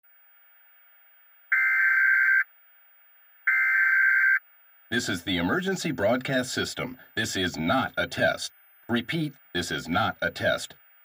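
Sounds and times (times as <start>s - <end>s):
faint steady tone: 0.1s - 11.0s.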